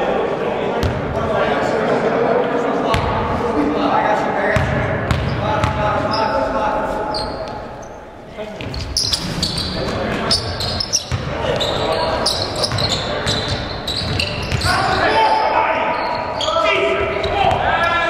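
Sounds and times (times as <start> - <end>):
basketball bouncing: 4.6 - 5.8, 9.9 - 11.7
sneakers squeaking on hardwood: 7.1 - 18.0.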